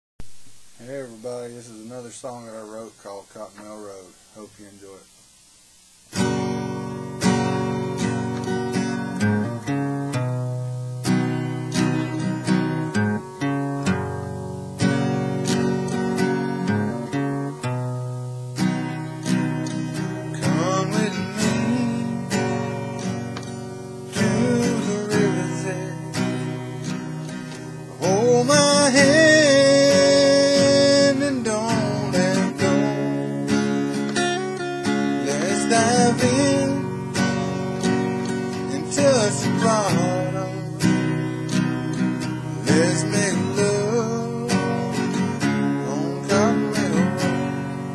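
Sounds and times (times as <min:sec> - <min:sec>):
acoustic guitar strumming: 0:00.2 - 0:47.9
man singing: 0:20.1 - 0:22.7, 0:24.1 - 0:26.6, 0:27.8 - 0:33.4, 0:34.8 - 0:41.4, 0:42.0 - 0:47.9.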